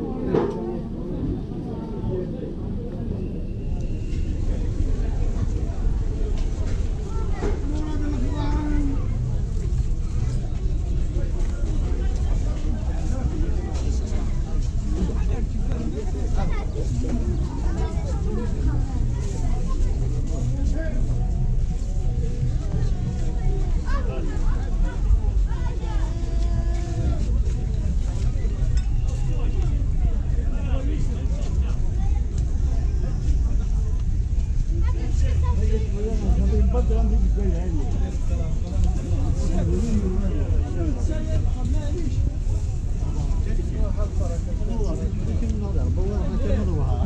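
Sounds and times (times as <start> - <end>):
indistinct voices outdoors: 0.0 - 47.0
people talking over one another: 0.0 - 47.0.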